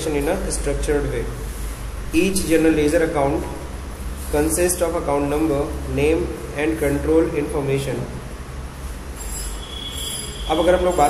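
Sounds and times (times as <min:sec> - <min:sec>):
low background hum and hiss: 0:00.0 - 0:11.0
high-pitched steady whine: 0:09.0 - 0:11.0.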